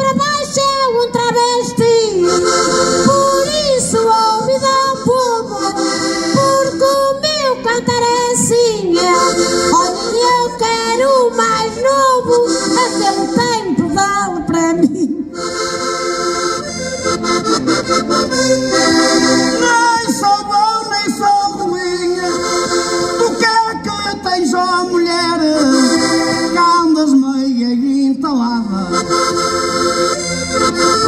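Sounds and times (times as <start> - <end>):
woman singing: 0.0 - 2.3, 3.1 - 5.8, 6.4 - 15.2
button accordions playing: 0.0 - 27.6, 28.6 - 31.0.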